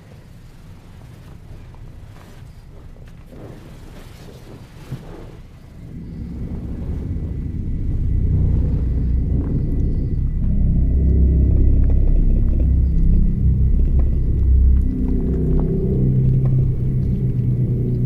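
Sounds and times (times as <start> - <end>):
low rumbling drone: 5.6 - 18.0.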